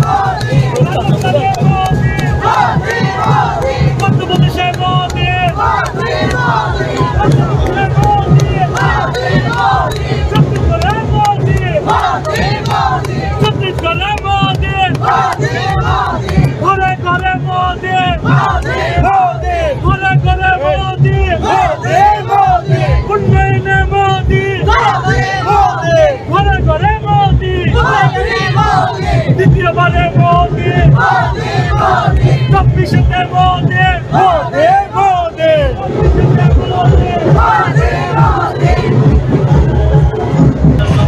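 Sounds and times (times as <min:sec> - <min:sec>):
crowd chanting: 0:00.0 - 0:26.4, 0:27.4 - 0:41.0
hand claps: 0:00.3 - 0:17.3
women chanting: 0:05.6 - 0:07.6, 0:24.7 - 0:26.2, 0:27.7 - 0:29.3, 0:30.9 - 0:32.5, 0:37.2 - 0:39.0.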